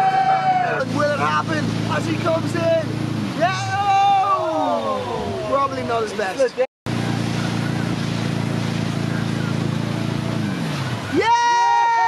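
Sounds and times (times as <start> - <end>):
boat engine droning: 0.0 - 12.0
wake water rushing: 0.0 - 12.0
wind: 0.0 - 12.0.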